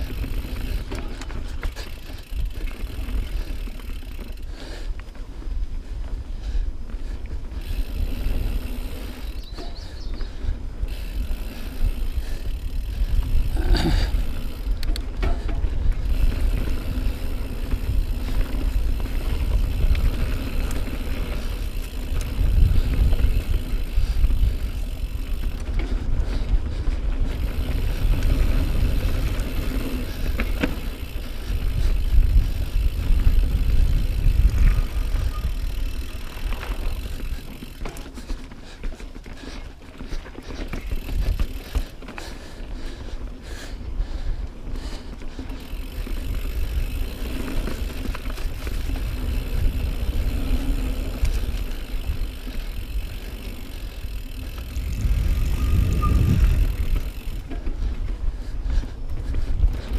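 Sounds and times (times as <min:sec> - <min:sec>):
wind: 0:00.0 - 0:59.9
tyres rumbling on dirt: 0:10.9 - 0:43.4, 0:45.4 - 0:58.2.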